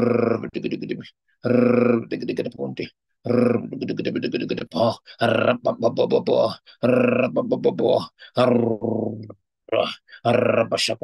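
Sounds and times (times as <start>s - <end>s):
man praying in tongues: 0.0s - 11.0s.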